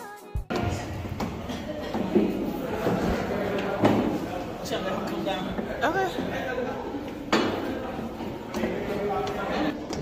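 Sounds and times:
background music: 0:00.0 - 0:01.5
indistinct voices: 0:00.4 - 0:10.0
people climbing stone passage: 0:01.2 - 0:10.0.

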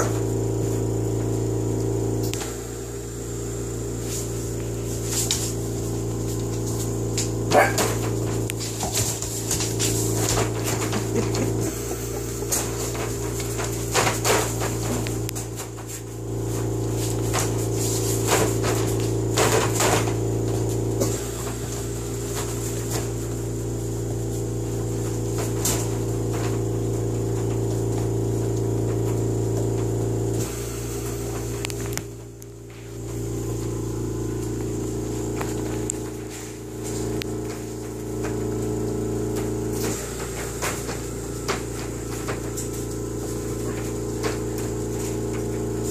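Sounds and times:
low mechanical hum: 0:00.0 - 0:45.9
knocks and rattles of wire pen: 0:06.3 - 0:11.7, 0:12.4 - 0:23.2, 0:24.6 - 0:30.0.

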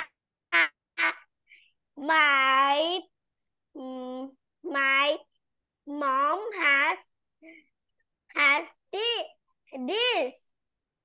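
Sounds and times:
child repeating a syllable: 0:00.0 - 0:07.7, 0:08.3 - 0:10.5.

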